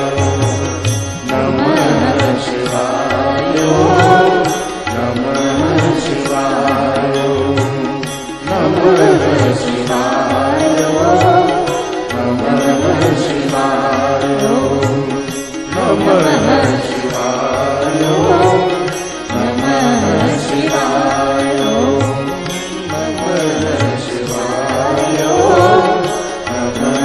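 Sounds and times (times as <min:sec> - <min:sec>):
instrumental accompaniment: 0:00.0 - 0:27.0
man singing: 0:00.0 - 0:27.0.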